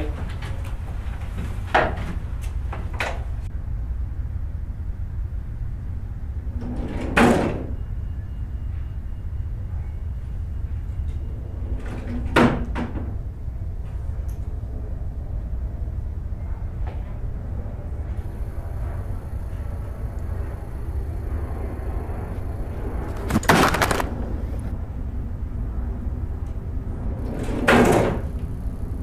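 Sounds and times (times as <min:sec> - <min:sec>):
steady low hum: 0:00.0 - 0:29.0.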